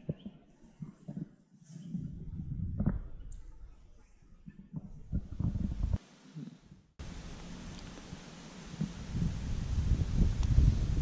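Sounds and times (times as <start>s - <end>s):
low rumbling microphone noise: 0.0s - 11.0s.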